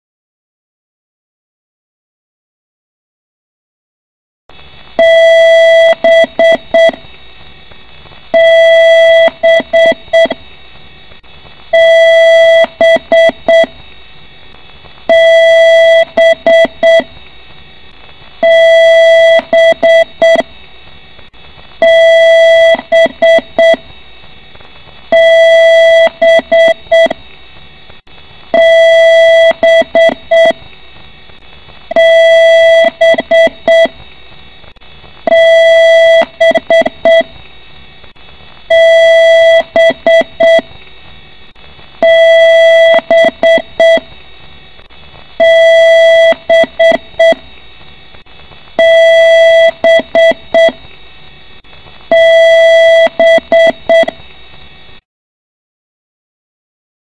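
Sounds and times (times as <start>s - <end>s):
steady background hum: 4.5s - 55.0s
computer beeps long and short: 5.0s - 7.1s, 8.4s - 10.4s, 11.7s - 13.8s, 15.1s - 17.2s, 18.4s - 20.5s, 21.8s - 24.0s, 25.1s - 27.2s, 28.5s - 30.7s, 31.9s - 34.0s, 35.3s - 37.4s, 38.7s - 40.8s, 42.0s - 44.2s, 45.4s - 47.5s, 48.8s - 50.9s, 52.1s - 54.3s.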